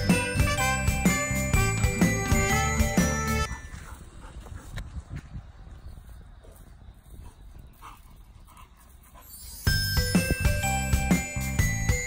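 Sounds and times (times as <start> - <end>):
light jingly background music: 0.0 - 4.0, 8.8 - 12.0.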